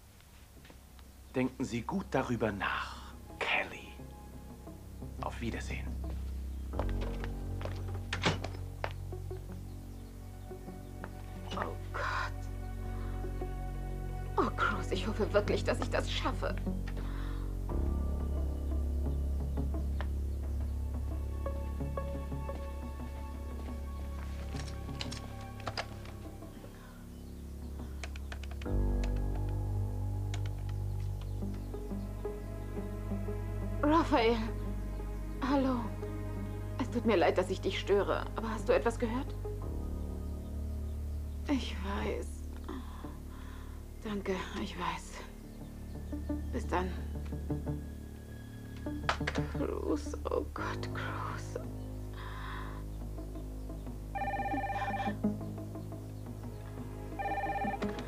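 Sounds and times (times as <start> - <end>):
quiet background music: 0.0 - 58.0
telephone ringing electronic trill: 54.2 - 55.2, 57.2 - 58.0.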